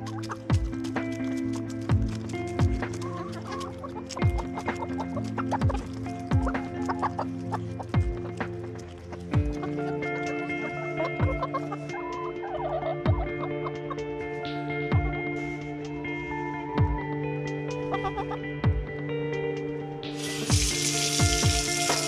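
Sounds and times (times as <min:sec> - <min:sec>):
hens clucking: 0:00.0 - 0:14.4, 0:17.8 - 0:18.6, 0:20.2 - 0:22.0
music with held notes: 0:00.0 - 0:22.0
deep regular drum beat: 0:00.5 - 0:01.0, 0:01.9 - 0:03.0, 0:04.2 - 0:04.8, 0:05.6 - 0:06.8, 0:08.0 - 0:08.7, 0:09.4 - 0:09.7, 0:20.2 - 0:22.0.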